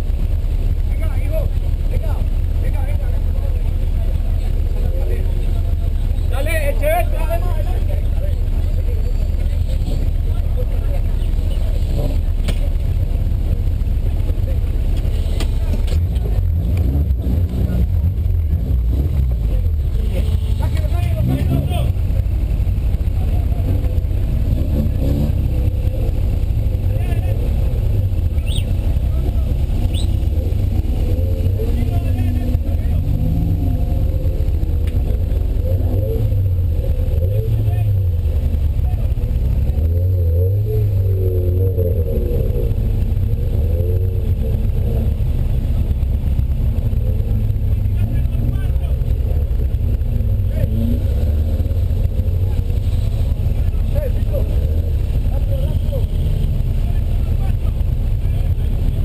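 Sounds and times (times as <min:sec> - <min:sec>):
car engine idling: 0:00.0 - 0:59.0
people's voices: 0:00.0 - 0:59.0.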